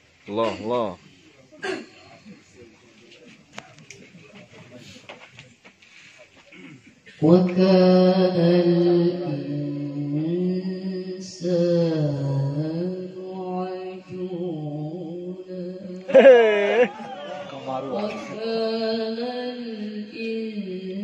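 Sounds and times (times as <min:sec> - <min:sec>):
woman reciting melodically: 0:07.1 - 0:16.9, 0:17.8 - 0:21.0.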